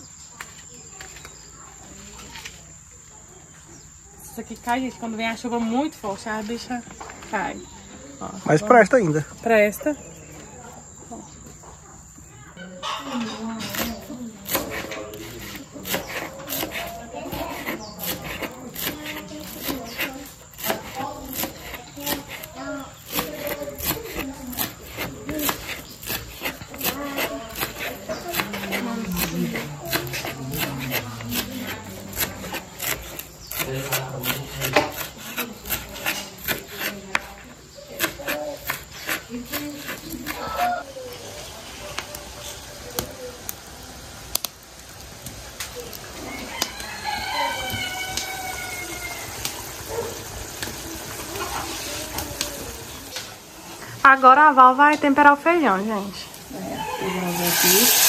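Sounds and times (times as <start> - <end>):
knife chopping on cutting board: 13.7 - 22.5, 23.1 - 37.4, 38.0 - 40.7.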